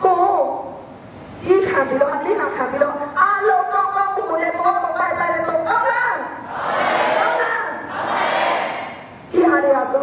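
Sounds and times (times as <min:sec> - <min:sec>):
woman's amplified voice: 0:00.0 - 0:06.4, 0:07.2 - 0:07.9, 0:09.3 - 0:10.0
audience shouting together: 0:06.5 - 0:08.9.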